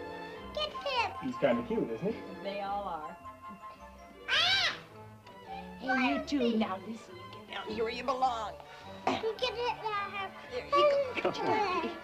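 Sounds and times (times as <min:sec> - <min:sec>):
child squealing: 0:04.2 - 0:04.9.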